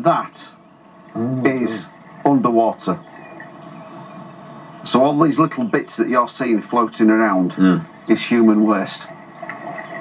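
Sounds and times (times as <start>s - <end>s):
man speaking: 0.0s - 0.6s, 1.2s - 3.0s, 4.8s - 9.1s
low background noise: 0.0s - 10.0s.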